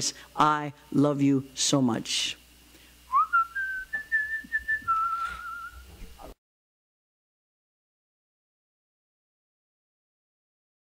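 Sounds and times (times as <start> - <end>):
person whistling: 3.1 - 5.9.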